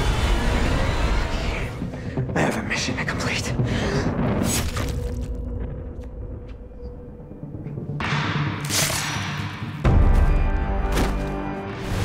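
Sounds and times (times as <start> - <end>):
dramatic film score: 0.0 - 12.0.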